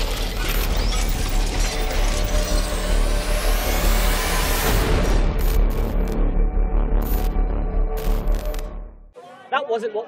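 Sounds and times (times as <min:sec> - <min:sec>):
music: 0:00.0 - 0:09.2.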